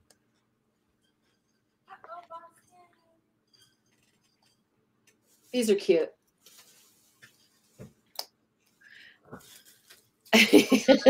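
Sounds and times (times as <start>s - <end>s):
woman laughing loudly: 10.4s - 11.0s.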